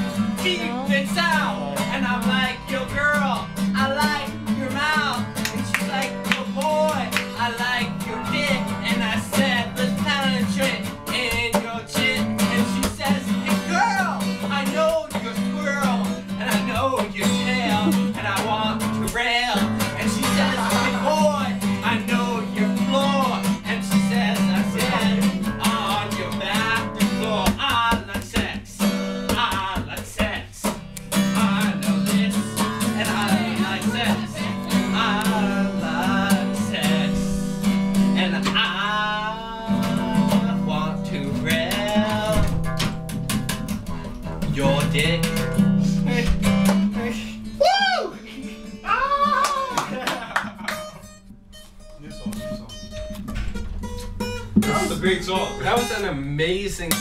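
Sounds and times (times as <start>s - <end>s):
acoustic guitar strumming: 0.0s - 57.0s
person singing: 0.1s - 2.5s, 15.1s - 27.9s.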